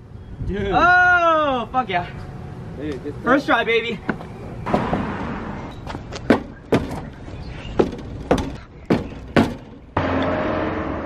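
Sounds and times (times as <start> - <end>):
sharp knocks and taps: 7.8 - 9.8.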